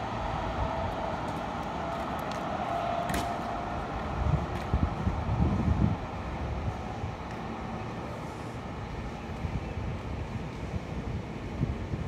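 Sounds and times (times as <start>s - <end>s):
distant electric train rumble: 0.0s - 12.0s
wind buffeting microphone: 0.0s - 12.0s.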